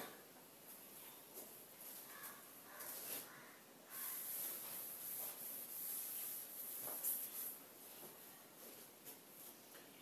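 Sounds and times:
duster rubbing on chalkboard: 0:04.0 - 0:07.6.

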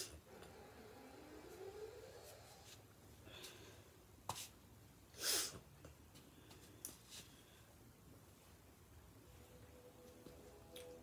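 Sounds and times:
soft breath: 0:00.5 - 0:04.0.

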